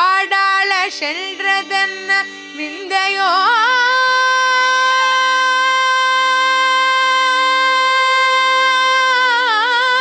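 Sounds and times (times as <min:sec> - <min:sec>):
woman singing devotional song: 0:00.0 - 0:10.0.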